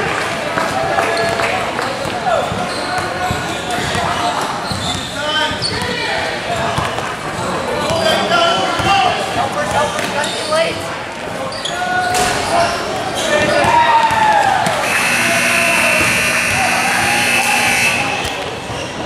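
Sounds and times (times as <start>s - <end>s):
voices in a large hall: 0.0s - 19.0s
scoreboard buzzer: 14.8s - 18.4s
basketball dribbling on court: 15.7s - 17.3s.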